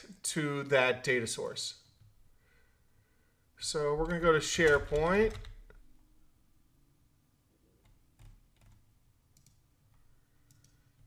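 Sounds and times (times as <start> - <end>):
faint computer mouse clicks: 10.4 - 10.8.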